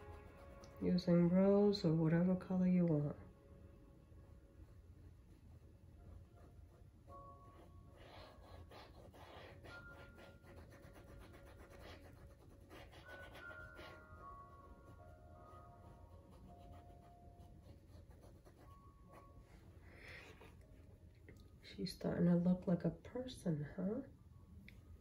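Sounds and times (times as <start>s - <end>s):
paintbrush scratching on canvas: 0.0s - 1.9s, 4.6s - 20.8s
soft background music: 0.0s - 25.0s.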